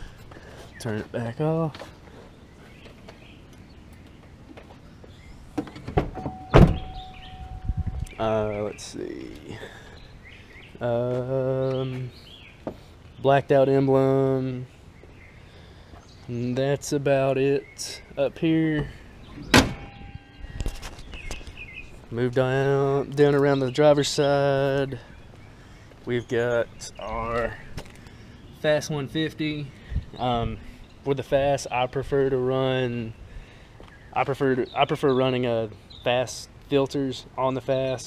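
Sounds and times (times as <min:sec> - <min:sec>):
birds chirping faintly: 0:00.0 - 0:38.0
truck door thunk: 0:05.6 - 0:07.3, 0:18.8 - 0:20.2
steady single-note tone: 0:06.2 - 0:08.3, 0:19.8 - 0:20.6
footsteps on concrete: 0:10.7 - 0:12.9, 0:24.7 - 0:26.1, 0:33.8 - 0:34.0.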